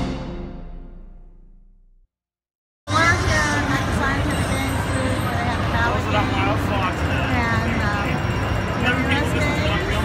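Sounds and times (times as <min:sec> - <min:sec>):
slot machine music: 0:00.0 - 0:01.2
low hum of hall: 0:02.9 - 0:10.0
people talking: 0:02.9 - 0:10.0.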